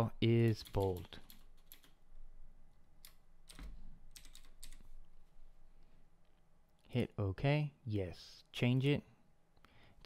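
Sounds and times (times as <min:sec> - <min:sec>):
computer keyboard keystrokes: 0:00.6 - 0:02.0, 0:03.0 - 0:04.9.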